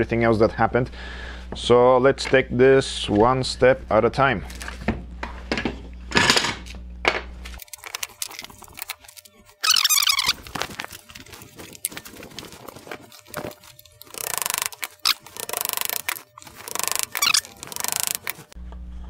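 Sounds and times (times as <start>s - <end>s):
fast rasping: 7.6s - 18.6s
short squeal: 9.6s - 10.4s
clamps and wood clattering: 11.9s - 18.6s.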